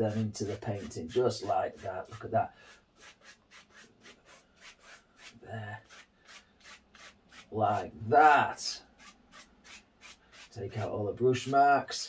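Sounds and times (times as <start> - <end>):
brush rubbing on canvas: 0.0 - 7.9, 8.9 - 10.6.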